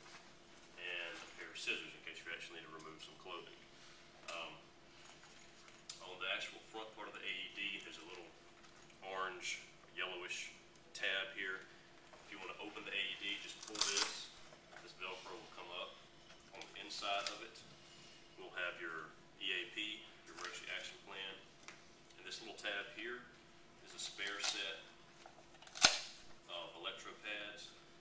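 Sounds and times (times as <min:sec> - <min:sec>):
fastener snapping open: 0:25.6 - 0:26.2.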